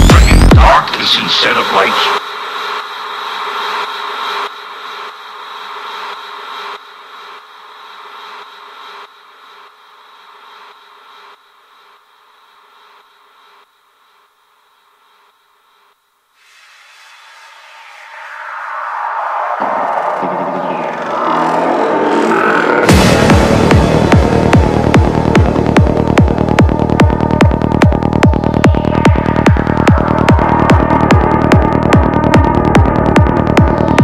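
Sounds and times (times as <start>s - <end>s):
rising swell of noise: 16.4s - 34.0s
trance synth tail: 16.4s - 34.0s.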